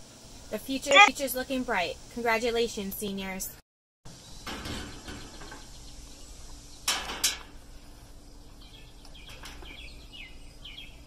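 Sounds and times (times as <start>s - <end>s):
quiet outdoor background: 0.0s - 11.0s.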